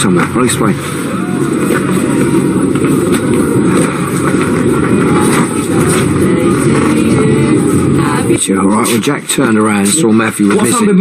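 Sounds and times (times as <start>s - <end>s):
street traffic rumble: 0.0s - 11.0s
vehicle engine running: 0.0s - 11.0s.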